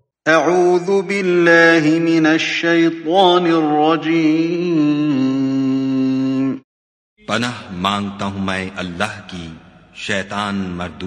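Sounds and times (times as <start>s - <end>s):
man chanting melodically: 0.3s - 6.6s, 7.2s - 11.0s.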